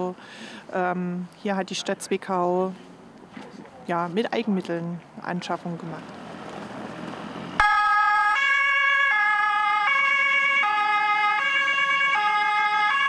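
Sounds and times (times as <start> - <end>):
two-tone emergency siren: 7.6 - 13.0.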